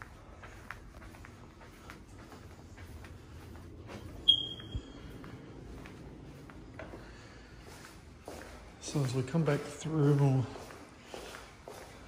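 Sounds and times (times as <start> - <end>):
footsteps on carpet: 0.0 - 12.0
high-pitched electronic beep: 4.2 - 5.0.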